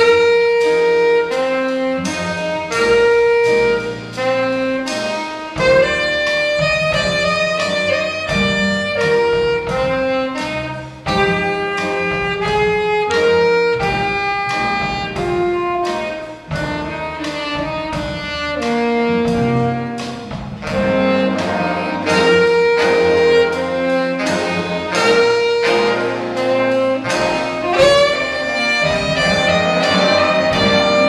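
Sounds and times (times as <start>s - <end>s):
alto saxophone melody: 0.0s - 31.0s
bass: 0.0s - 31.0s
drum kit: 0.0s - 31.0s
piano: 0.0s - 31.0s.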